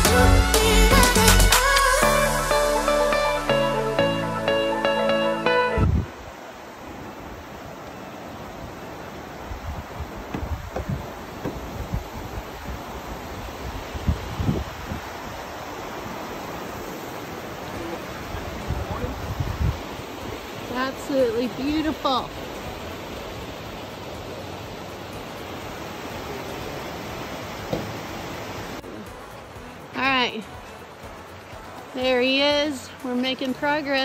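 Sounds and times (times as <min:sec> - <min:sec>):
music: 0:00.0 - 0:06.0, 0:28.8 - 0:34.0
creek water rushing: 0:00.0 - 0:34.0
footsteps on wooden bridge: 0:09.8 - 0:12.4
trekking poles on wood: 0:10.2 - 0:12.0.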